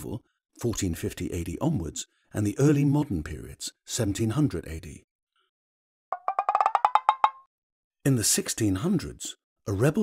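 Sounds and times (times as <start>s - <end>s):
short pitched percussive taps: 6.1s - 7.5s.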